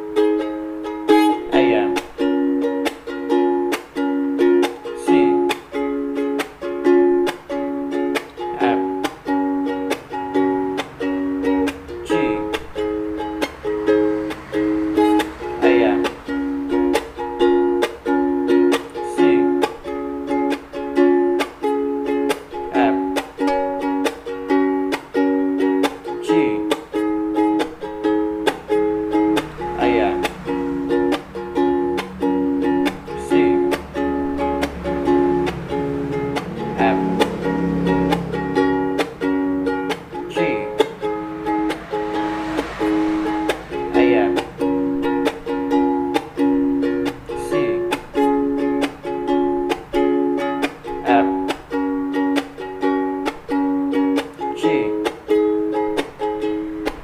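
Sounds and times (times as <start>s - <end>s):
ukulele strummed: 0.0s - 57.0s.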